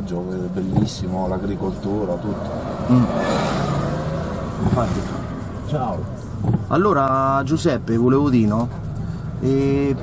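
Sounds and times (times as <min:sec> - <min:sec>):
road and engine noise inside car: 0:00.0 - 0:10.0
rushing swell: 0:02.1 - 0:05.8.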